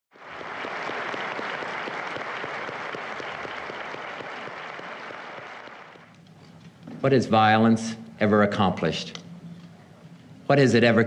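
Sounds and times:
audience applauding: 0.1s - 6.1s.

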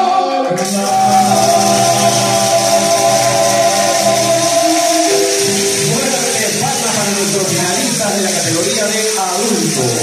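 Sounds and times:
live band with guitar: 0.5s - 10.0s.

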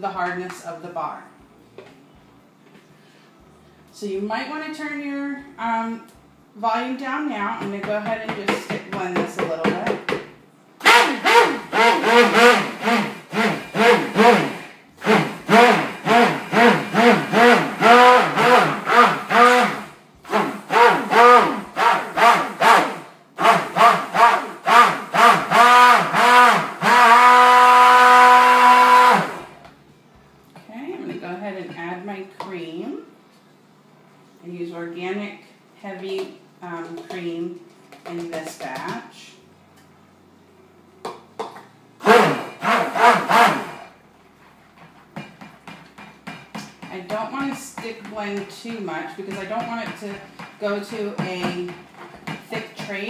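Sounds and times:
stick blender motor whining: 10.8s - 29.6s, 42.0s - 44.0s.

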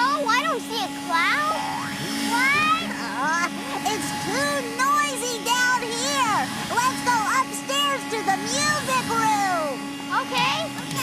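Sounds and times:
vacuum cleaner humming: 0.0s - 11.0s
voices talking loudly: 0.0s - 11.0s.

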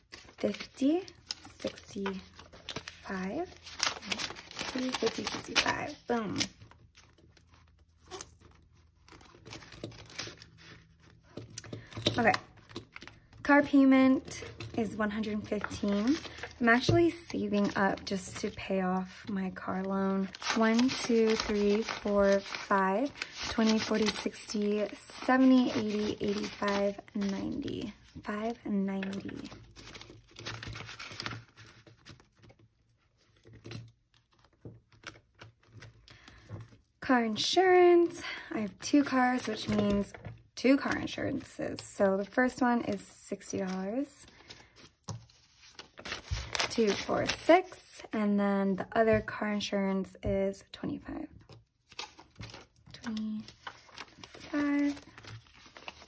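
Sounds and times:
plastic envelope crinkling: 0.0s - 32.6s, 43.5s - 47.8s, 51.8s - 56.0s
banknotes rustling: 0.0s - 36.8s, 42.2s - 48.0s, 51.5s - 56.0s.

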